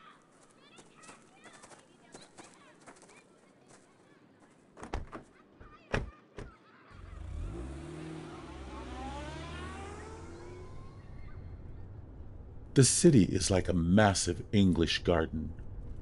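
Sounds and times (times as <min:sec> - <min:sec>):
futuristic vehicle hum and whine: 0:06.9 - 0:16.0.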